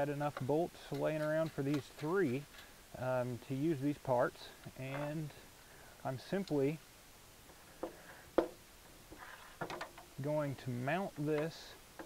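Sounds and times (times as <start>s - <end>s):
faint handling sounds: 7.4s - 12.0s.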